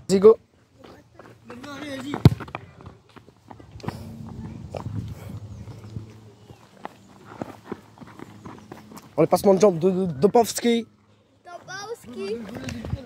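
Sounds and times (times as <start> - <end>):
running footsteps on dirt: 0.6 - 10.5.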